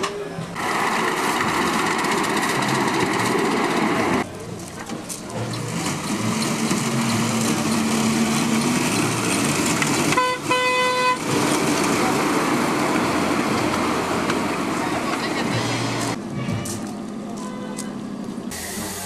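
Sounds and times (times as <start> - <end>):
background chatter: 0.0 - 0.7, 4.1 - 8.2, 11.2 - 19.0
locomotive horn toots: 10.0 - 11.4, 16.2 - 18.1.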